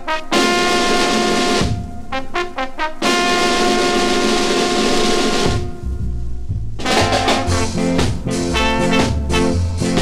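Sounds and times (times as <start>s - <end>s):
ska record chord: 0.0s - 10.0s.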